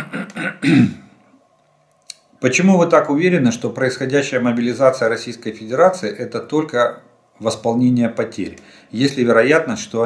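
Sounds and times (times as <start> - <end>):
man clearing his throat: 0.0 - 1.1.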